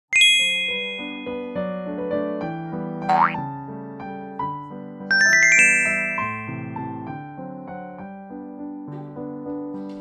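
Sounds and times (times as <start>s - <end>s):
bright chime: 0.2s - 1.5s, 5.1s - 6.7s
plinking keyboard melody: 0.2s - 1.8s, 3.1s - 3.4s, 5.1s - 7.2s.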